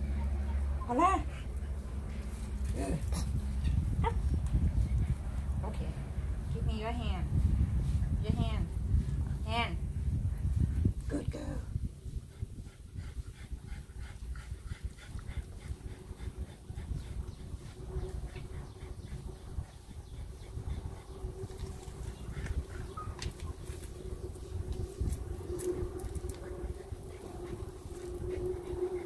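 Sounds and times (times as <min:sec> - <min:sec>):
steady low rumble: 0:00.0 - 0:29.0.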